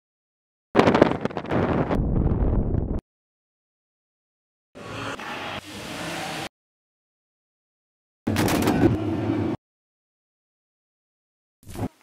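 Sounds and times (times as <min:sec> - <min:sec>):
strong wind buffeting microphone: 0:00.8 - 0:03.0.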